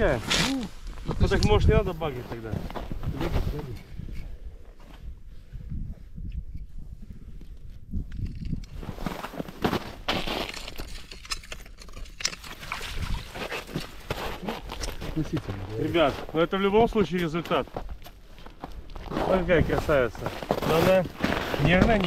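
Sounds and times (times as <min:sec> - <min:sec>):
knocks and scraping on ice: 0:08.1 - 0:16.4, 0:18.9 - 0:22.0.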